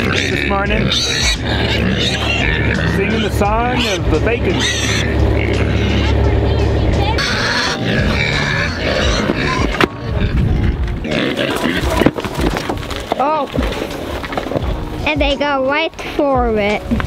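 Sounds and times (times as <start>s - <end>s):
pigs squealing and grunting: 0.0s - 6.3s, 7.1s - 13.1s.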